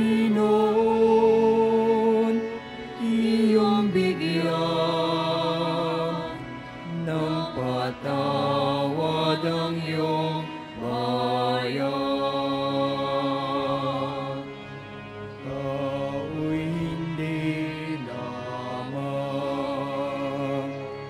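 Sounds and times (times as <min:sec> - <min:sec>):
slow church hymn: 0:00.0 - 0:21.0.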